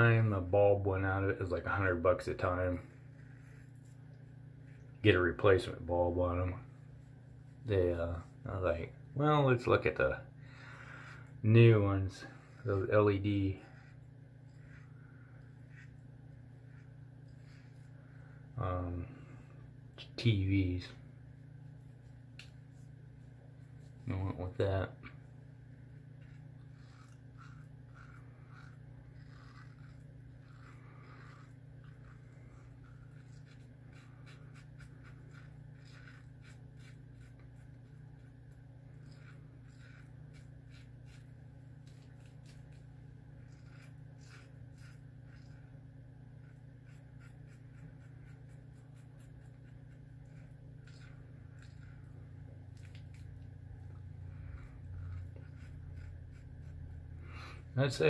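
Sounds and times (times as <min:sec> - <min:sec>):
razor scraping stubble: 0:00.0 - 0:58.0
steady low hum: 0:00.0 - 0:58.0.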